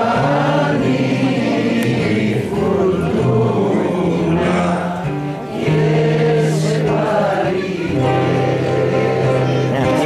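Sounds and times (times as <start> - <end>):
acoustic guitar: 0.0 - 10.0
man singing: 2.5 - 6.8.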